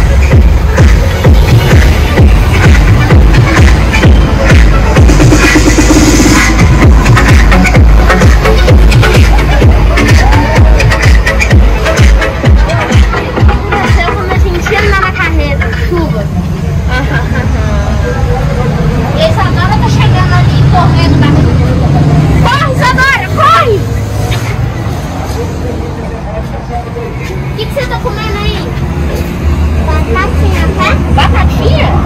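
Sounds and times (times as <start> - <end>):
large vehicle engine rumble: 0.0 - 32.0
voices and shouts: 6.5 - 24.3.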